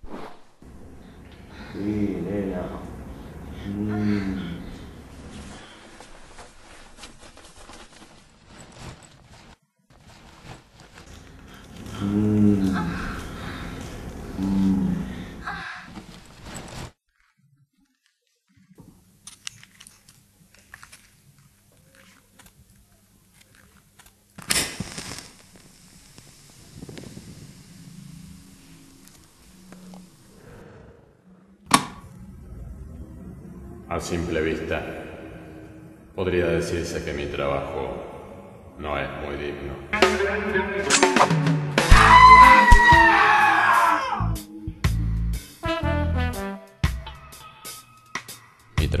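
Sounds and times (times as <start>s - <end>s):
low steady hum: 0.6s - 9.0s
film score held high note: 39.8s - 43.2s
low bass: 44.3s - 46.4s.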